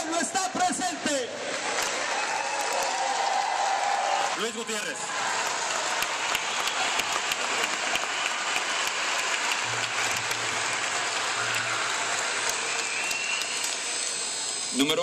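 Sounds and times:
crowd applauding: 0.7 - 15.0.

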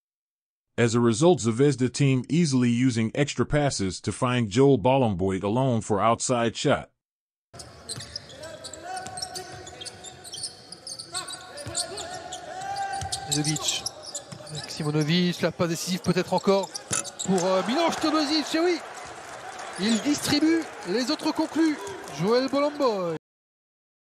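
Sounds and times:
arena noise: 7.6 - 23.2
ball bouncing on hardwood court: 11.6 - 12.0.

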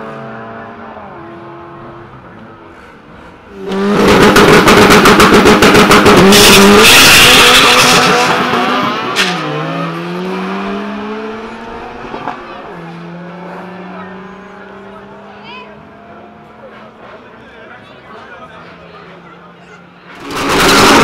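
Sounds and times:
drag car engines at full throttle: 0.0 - 21.0.

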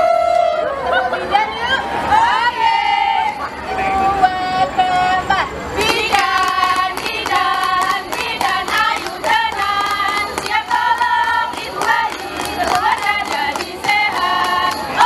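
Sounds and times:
women singing a cheer chant: 0.0 - 15.0
rhythmic hand clapping: 5.8 - 15.0.

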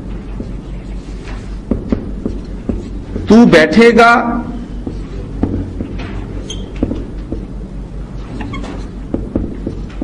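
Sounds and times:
steady low hum: 0.0 - 10.0
marker scratching on whiteboard: 0.3 - 3.4
marker squeak: 6.4 - 6.8, 8.3 - 9.0.

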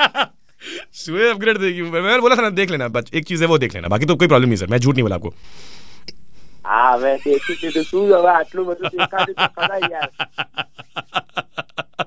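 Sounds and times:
man laughing loudly: 0.0 - 0.3, 7.0 - 12.0.

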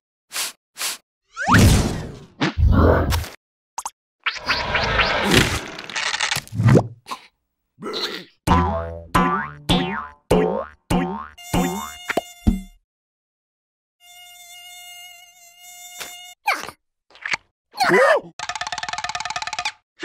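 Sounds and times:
mosquito whine: 11.4 - 12.7.

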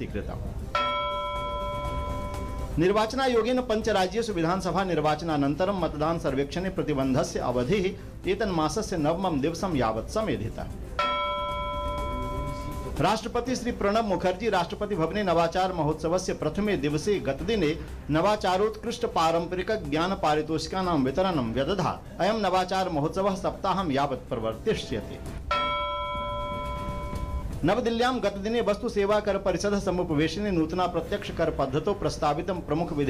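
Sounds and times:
bell-like electronic chime: 0.7 - 2.8, 11.0 - 13.1, 25.5 - 27.5.

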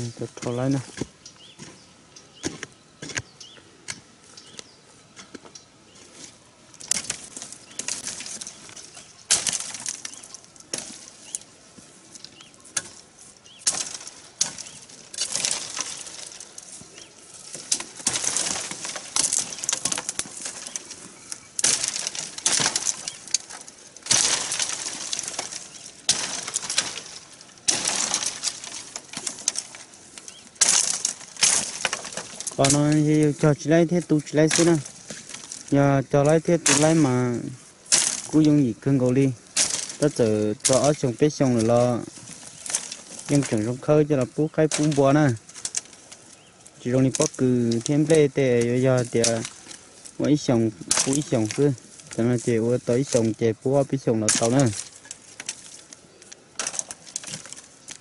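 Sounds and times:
dry stalks rustling and crackling: 0.0 - 58.0.

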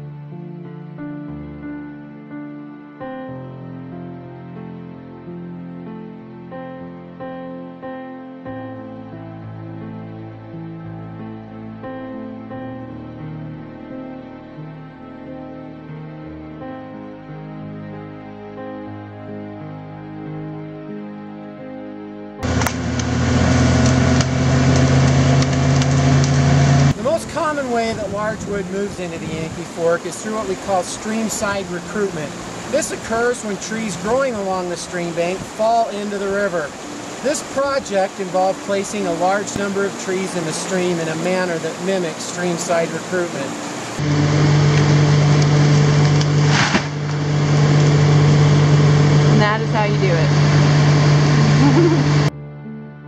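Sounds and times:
wood cracking: 22.4 - 26.8, 44.8 - 47.2
excavator diesel engine: 22.4 - 27.0, 44.0 - 52.3
short rush of noise: 43.5 - 49.3
wavering higher-pitched sound: 47.2 - 52.3.

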